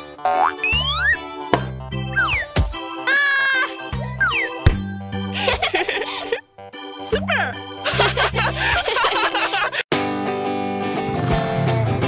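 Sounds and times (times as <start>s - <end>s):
children's background music: 0.0s - 9.8s.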